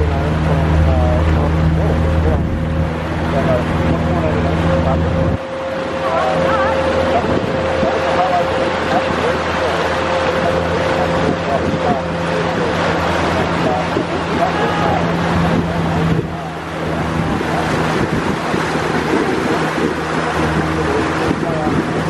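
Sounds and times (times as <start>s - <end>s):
boat motor droning: 0.0s - 22.0s
water rushing past hull: 0.0s - 22.0s
wind on microphone: 0.0s - 22.0s.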